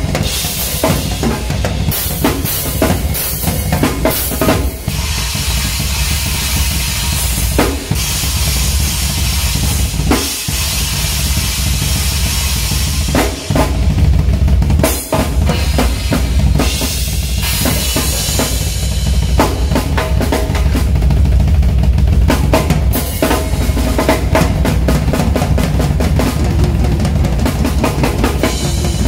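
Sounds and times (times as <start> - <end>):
cymbal wash: 0.0 - 13.5
bass drum: 0.0 - 29.0.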